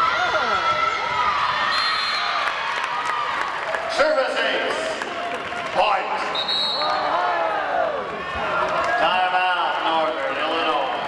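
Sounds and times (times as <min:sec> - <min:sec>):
voices in a gymnasium: 0:00.0 - 0:11.0.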